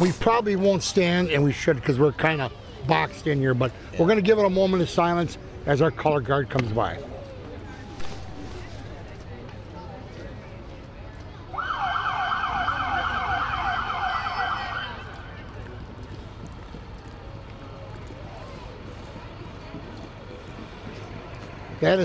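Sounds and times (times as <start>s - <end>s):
street background noise: 0.0s - 22.0s.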